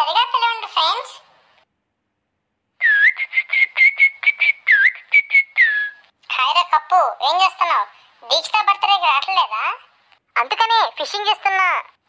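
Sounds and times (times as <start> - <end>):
high-pitched whistling: 2.8 - 6.1.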